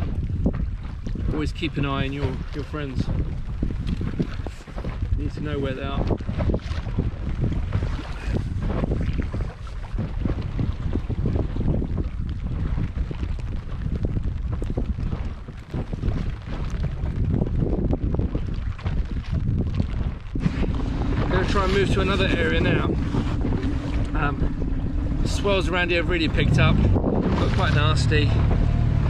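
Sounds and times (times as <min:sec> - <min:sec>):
choppy water splashing: 0:00.0 - 0:29.0
wind buffeting microphone: 0:00.0 - 0:29.0.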